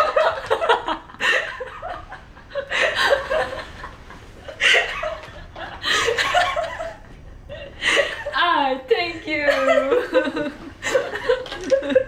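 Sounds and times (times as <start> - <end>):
women laughing: 0.0 - 8.4, 9.4 - 12.0.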